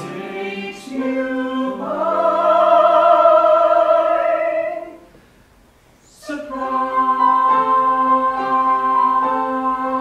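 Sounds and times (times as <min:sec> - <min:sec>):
mixed choir singing held chords: 0:00.0 - 0:05.0, 0:06.2 - 0:10.0.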